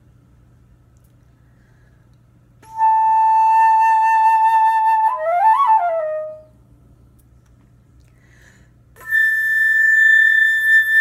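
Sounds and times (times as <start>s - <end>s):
flute long high note: 2.6s - 6.5s, 9.0s - 11.0s.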